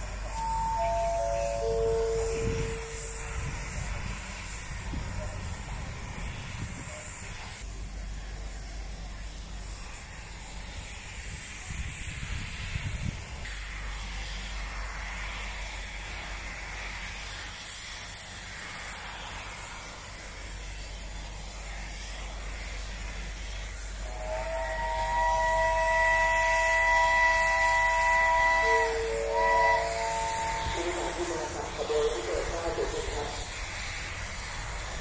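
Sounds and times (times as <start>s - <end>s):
locomotive chime whistle: 0.0s - 4.0s, 24.0s - 33.6s
steam hissing: 0.0s - 35.0s.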